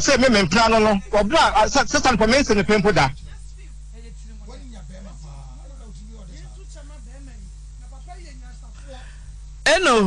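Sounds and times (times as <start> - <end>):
electrical hum and line hiss: 0.0 - 10.0.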